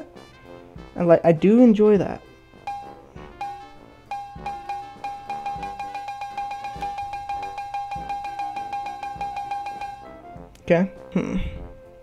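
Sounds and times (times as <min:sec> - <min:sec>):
fast electronic ticks: 0:02.7 - 0:10.1
high ringing note: 0:02.7 - 0:10.2
low kick drum: 0:04.3 - 0:06.0, 0:06.7 - 0:08.4.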